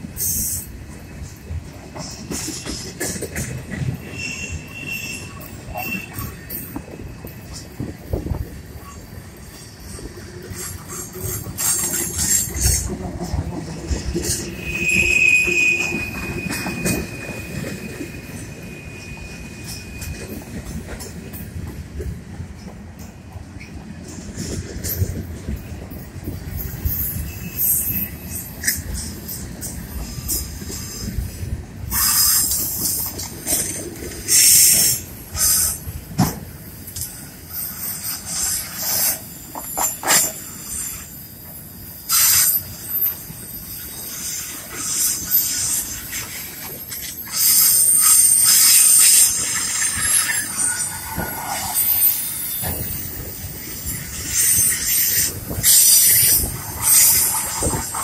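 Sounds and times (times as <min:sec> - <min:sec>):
steel wheels rumbling on rail: 0:00.0 - 0:58.0
wheel squeal: 0:02.3 - 0:21.0, 0:26.5 - 0:31.3, 0:31.9 - 0:35.9, 0:36.8 - 0:58.0
high wheel flange screeching: 0:13.9 - 0:20.4, 0:36.8 - 0:58.0.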